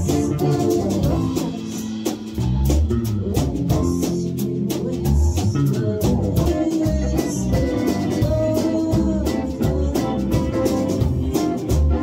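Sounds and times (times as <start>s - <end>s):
drum kit: 0.0s - 12.0s
electric guitars: 0.0s - 12.0s.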